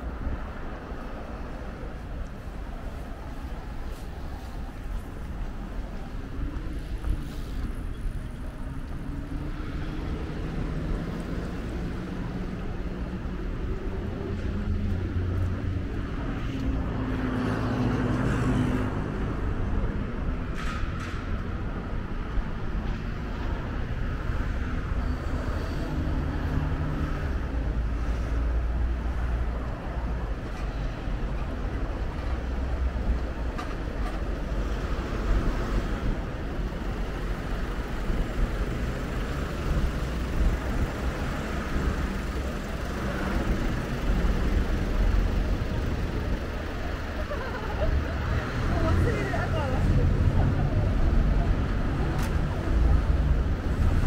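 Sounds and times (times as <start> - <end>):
roadway hum: 0.0 - 54.0
vehicles passing: 0.0 - 54.0.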